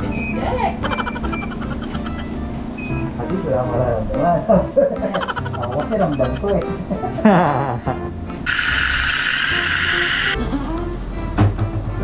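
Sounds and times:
dental drill whining: 0.9s - 2.4s, 8.5s - 10.4s.

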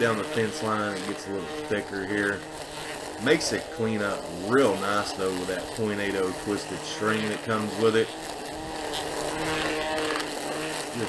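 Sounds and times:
string trimmer cutting grass: 0.0s - 11.0s.

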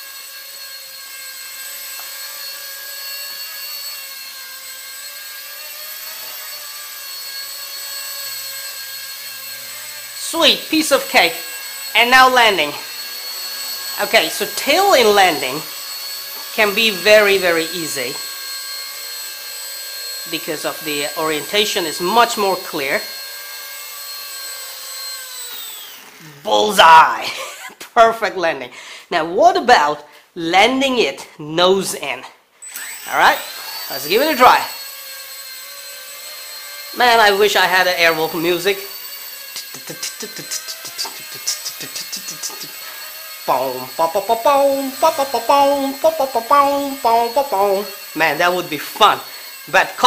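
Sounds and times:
toy helicopter motor whine: 0.0s - 27.7s, 32.6s - 50.0s.

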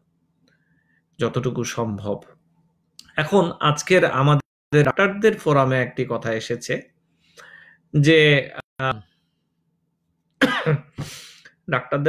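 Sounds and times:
man coughing: 10.4s - 11.2s.

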